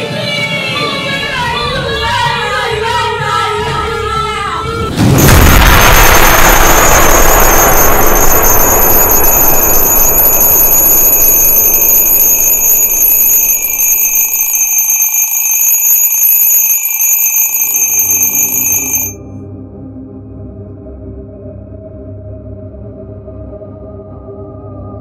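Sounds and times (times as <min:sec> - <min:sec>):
loud rushing wash of sound: 0:05.0 - 0:13.0
alarm clock ringing: 0:06.9 - 0:19.2.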